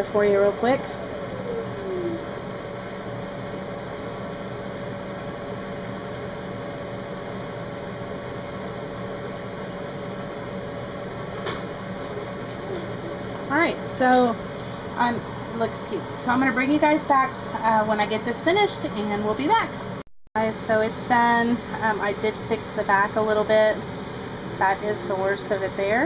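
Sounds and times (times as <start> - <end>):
background hum with held tone: 0.0 - 26.0.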